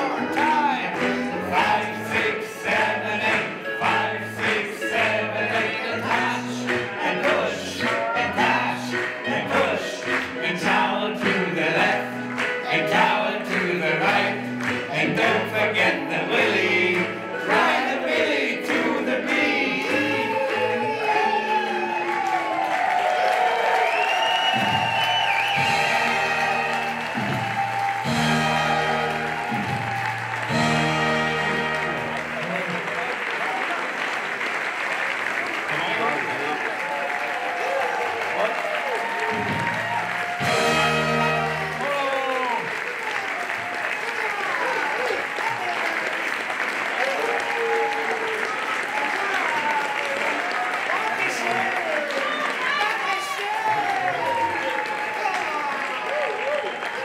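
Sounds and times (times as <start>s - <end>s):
audience applauding and cheering: 0.0s - 57.0s.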